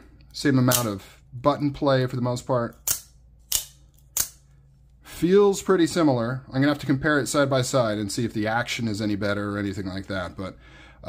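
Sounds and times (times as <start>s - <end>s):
knife blade snapping: 2.8s - 4.4s.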